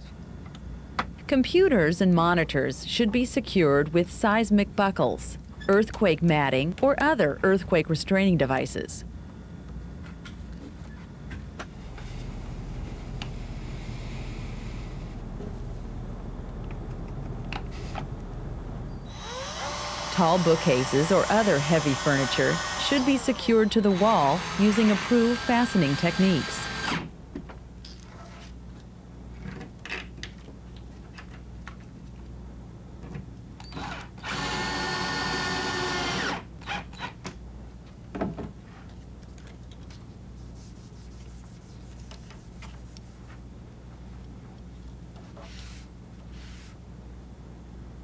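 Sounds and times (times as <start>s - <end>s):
steady low hum: 0.0s - 36.6s, 37.3s - 48.0s
cordless drill whining: 19.1s - 27.0s, 33.7s - 36.4s.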